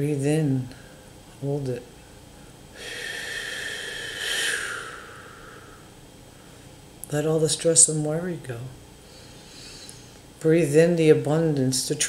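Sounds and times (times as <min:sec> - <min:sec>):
person exhaling slowly: 0:02.8 - 0:05.9.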